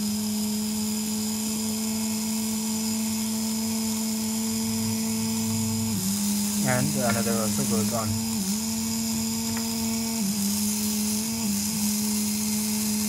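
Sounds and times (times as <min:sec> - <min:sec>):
small gear motor humming: 0:00.0 - 0:13.0.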